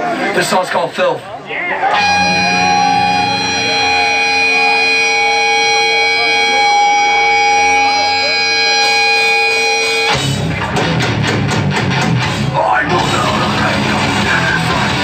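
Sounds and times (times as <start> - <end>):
voices: 0.0 - 10.1
hardcore band playing: 1.9 - 15.0
electric guitar ringing note: 2.0 - 10.4.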